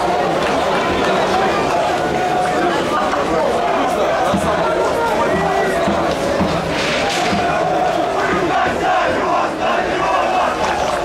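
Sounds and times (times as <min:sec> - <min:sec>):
stadium crowd chanting: 0:00.0 - 0:11.0.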